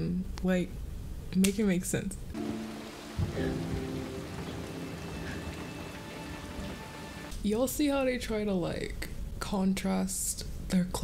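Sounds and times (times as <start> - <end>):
steady rain-like hiss: 2.3 - 7.8
soft held low music notes: 2.4 - 7.3.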